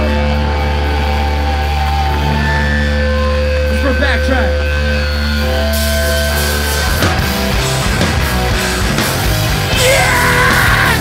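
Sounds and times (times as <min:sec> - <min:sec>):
amplified electric guitars and bass: 0:00.0 - 0:11.0.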